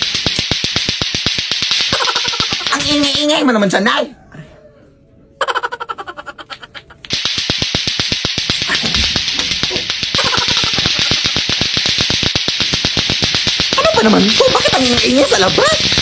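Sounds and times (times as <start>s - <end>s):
clacker balls clacking: 0.0s - 3.5s, 7.0s - 16.0s.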